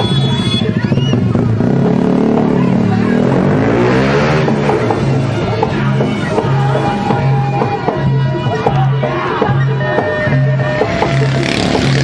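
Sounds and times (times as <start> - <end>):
motorcycle engine passing: 0.0 - 7.1, 10.7 - 12.0.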